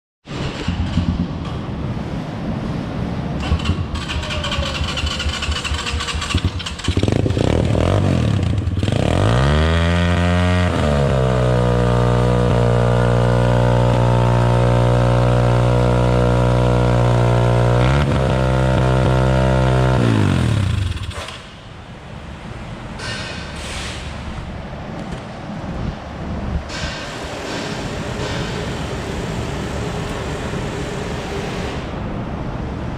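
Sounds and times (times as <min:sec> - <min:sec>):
dirt bike engine revving: 0:03.4 - 0:21.3.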